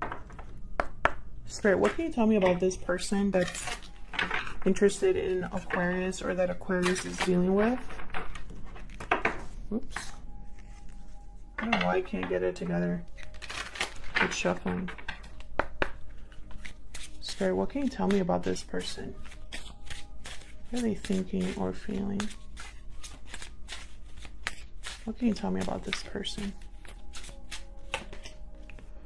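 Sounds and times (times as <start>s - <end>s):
soft background music: 0.0s - 29.0s
cards being shuffled: 13.1s - 28.9s.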